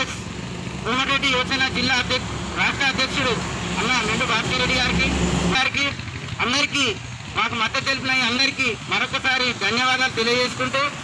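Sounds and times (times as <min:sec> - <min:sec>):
man speaking into microphone: 0:00.8 - 0:11.0.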